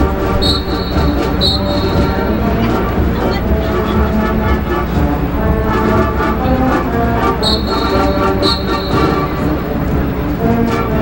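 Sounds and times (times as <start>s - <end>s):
brass chords: 0.0s - 11.0s
marching drums: 0.0s - 11.0s.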